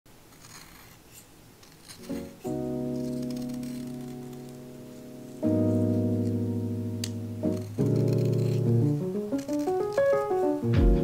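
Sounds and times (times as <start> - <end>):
knife scraping pencil wood: 0.3 - 6.4, 7.4 - 10.5.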